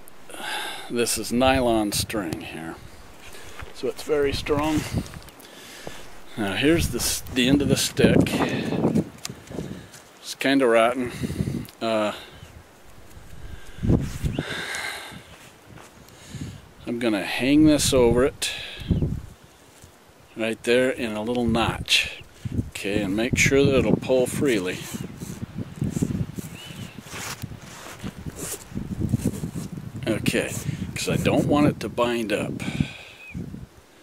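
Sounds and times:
rustling and scraping: 0:01.0 - 0:10.2, 0:12.7 - 0:14.4, 0:24.9 - 0:29.8.

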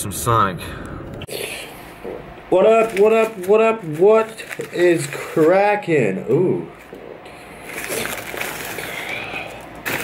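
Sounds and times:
plastic bag crinkling: 0:02.6 - 0:05.9, 0:06.8 - 0:10.0.

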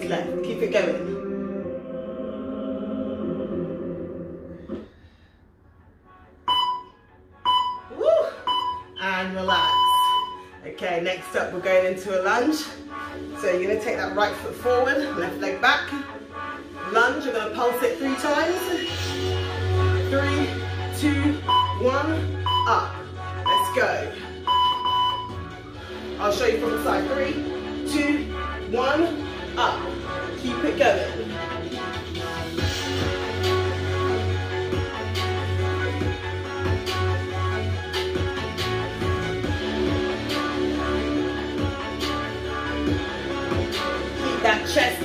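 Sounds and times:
background music: 0:00.0 - 0:45.0
interval timer beeps: 0:06.5 - 0:10.4, 0:21.4 - 0:23.8, 0:24.4 - 0:25.4.

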